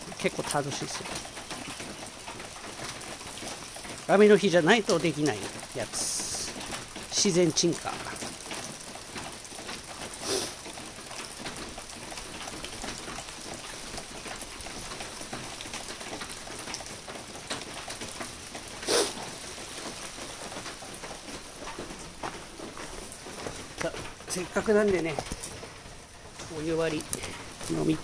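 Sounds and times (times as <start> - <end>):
rain pattering on concrete: 0.0 - 28.0.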